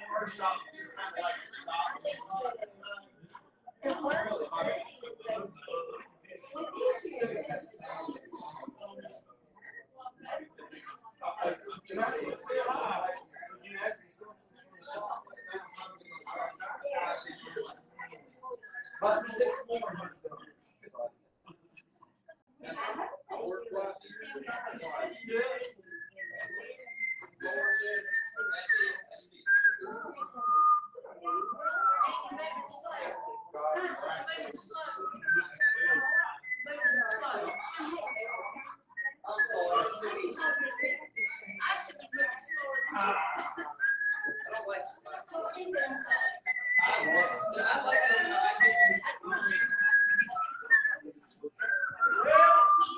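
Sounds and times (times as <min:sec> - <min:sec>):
indistinct talking: 0:00.0 - 0:52.9
person whistling a tune: 0:25.9 - 0:32.2, 0:35.0 - 0:42.9, 0:43.7 - 0:44.6, 0:45.8 - 0:52.9.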